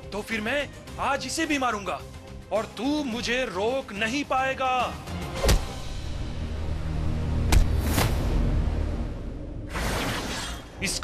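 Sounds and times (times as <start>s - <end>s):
low background music: 0.0s - 9.8s.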